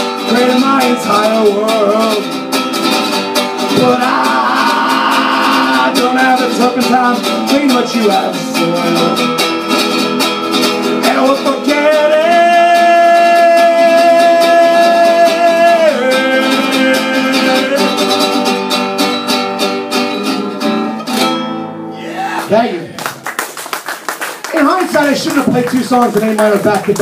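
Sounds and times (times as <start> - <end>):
man singing: 0.0 - 2.4, 3.6 - 10.3, 10.9 - 18.6
acoustic guitar strumming: 0.0 - 23.3.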